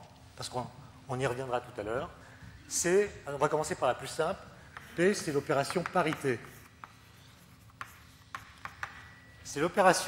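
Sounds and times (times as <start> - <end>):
chalk scratching on blackboard: 4.6 - 9.8
chalk tapping: 4.6 - 9.8.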